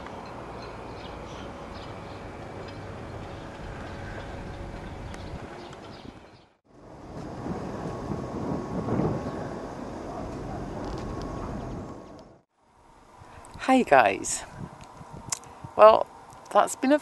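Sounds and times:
outdoor rumbling noise: 0.0 - 17.0.

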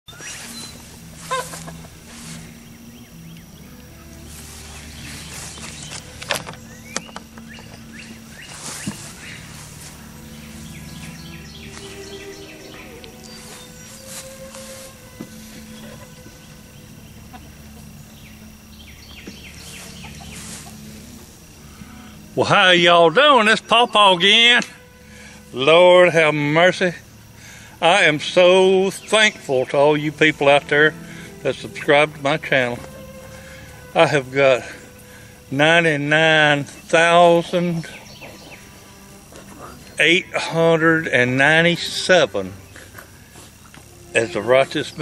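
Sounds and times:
birds calling: 0.1 - 45.0
steady low hum: 0.1 - 45.0.

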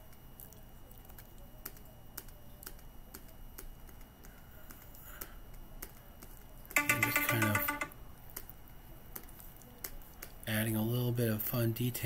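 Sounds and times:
computer input clicks and taps: 6.8 - 8.0.

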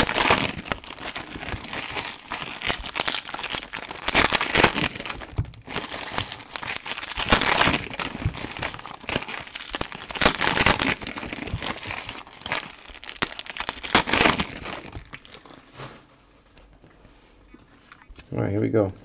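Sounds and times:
foil wrappers crinkling: 0.0 - 16.0.

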